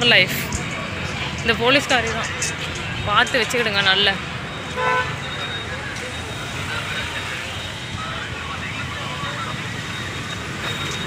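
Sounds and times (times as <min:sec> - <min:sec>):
road traffic rumble: 0:00.0 - 0:11.0
short car horn beep: 0:04.7 - 0:05.4.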